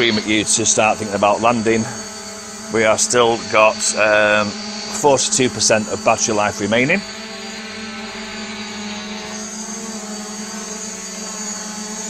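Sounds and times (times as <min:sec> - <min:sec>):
drone hovering hum: 0:00.0 - 0:12.0.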